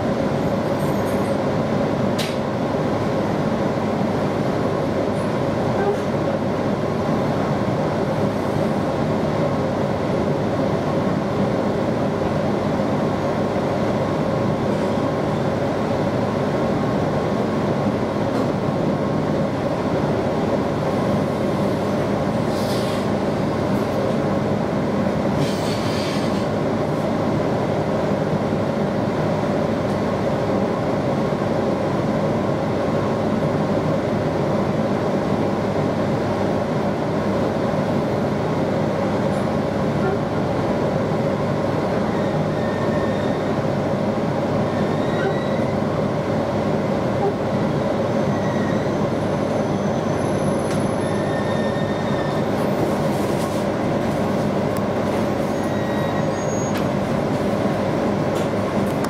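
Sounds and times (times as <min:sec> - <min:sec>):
train wheels and motors rumbling: 0:00.0 - 0:59.0
high-pitched train squeals: 0:42.1 - 0:43.5, 0:44.7 - 0:45.8, 0:48.1 - 0:52.5, 0:55.4 - 0:56.9.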